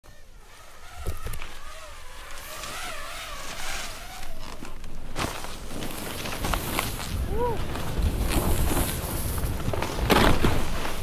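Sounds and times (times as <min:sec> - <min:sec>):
snowboard carving through snow: 0:00.1 - 0:11.0.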